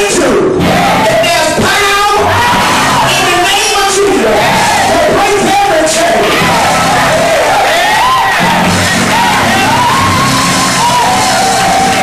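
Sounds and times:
congregation calling out: 0:00.0 - 0:12.0
preacher shouting: 0:00.0 - 0:12.0.

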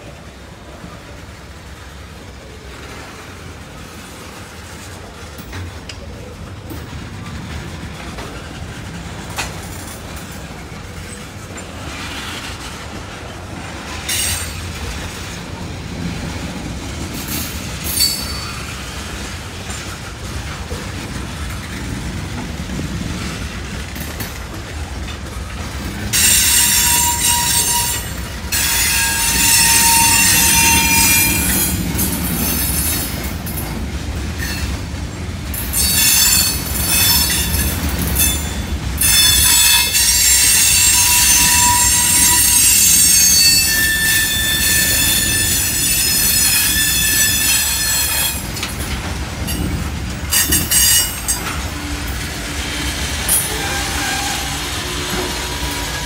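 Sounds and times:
train wheels rumbling on rails: 0:00.0 - 0:56.0
high-pitched wheel squeal: 0:26.2 - 0:31.7, 0:39.0 - 0:48.4.

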